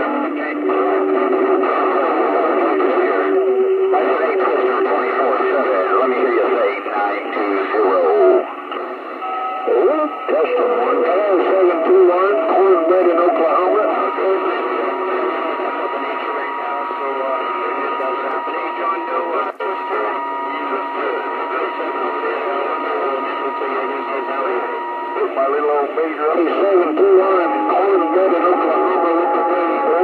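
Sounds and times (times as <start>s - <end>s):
garbled radio voices: 0.0s - 30.0s
radio crackle: 0.0s - 30.0s
radio static: 0.0s - 30.0s.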